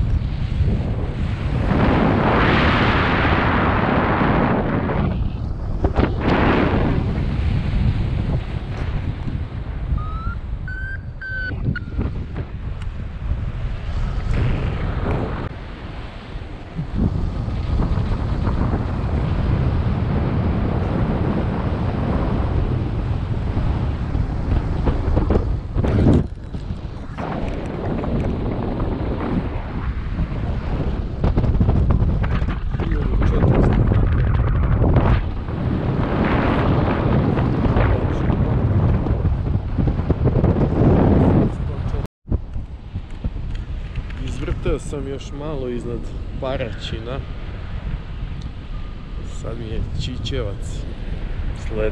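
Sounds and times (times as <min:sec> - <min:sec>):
wind rushing over microphone: 0:00.0 - 0:51.9
faint rising tone: 0:10.0 - 0:12.0.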